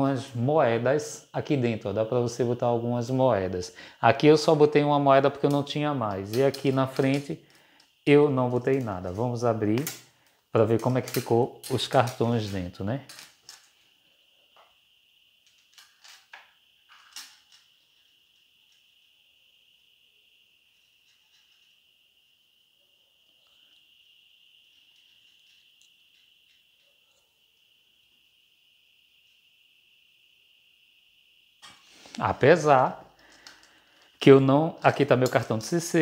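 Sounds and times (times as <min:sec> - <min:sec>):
faint high-pitched whine: 0:00.0 - 0:36.0.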